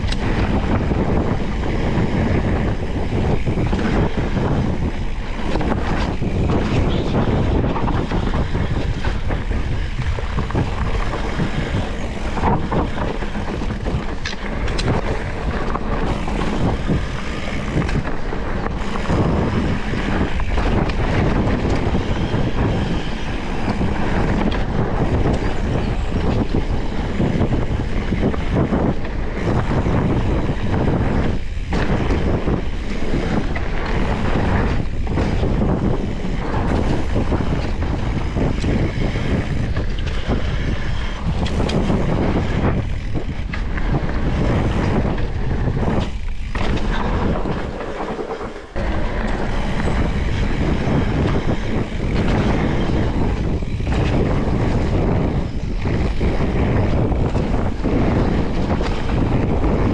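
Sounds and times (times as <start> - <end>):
bike knocks and rattles: 0.0 - 59.9
bike tyres on dirt trail: 0.0 - 59.9
wind buffeting microphone: 0.0 - 59.9.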